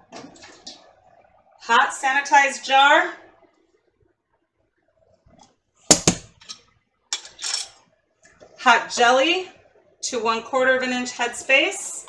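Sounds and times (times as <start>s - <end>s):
glass and metal clinks: 7.2s - 7.8s.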